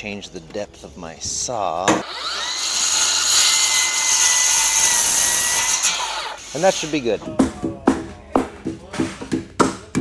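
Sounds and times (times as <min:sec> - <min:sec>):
circular saw cutting wood: 0:01.9 - 0:07.2.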